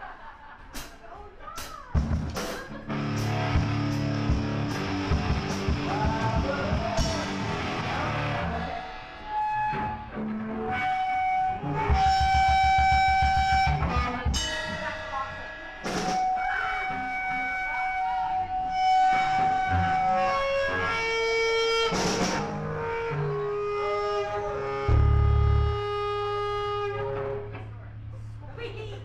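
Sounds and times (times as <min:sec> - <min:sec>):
drums: 0:00.0 - 0:29.0
electric guitars sustained notes: 0:02.7 - 0:29.0.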